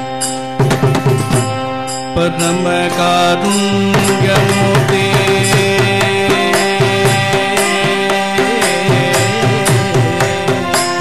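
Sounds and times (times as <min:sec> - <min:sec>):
harmonium: 0:00.0 - 0:11.0
sharp percussion strikes: 0:00.0 - 0:11.0
violin: 0:00.0 - 0:11.0.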